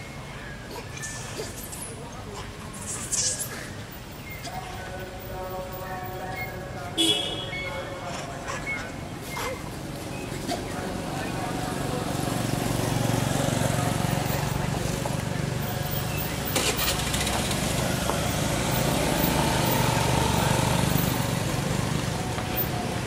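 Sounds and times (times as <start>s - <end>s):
indistinct voices: 0.0s - 23.0s
motor engine running: 10.8s - 23.0s.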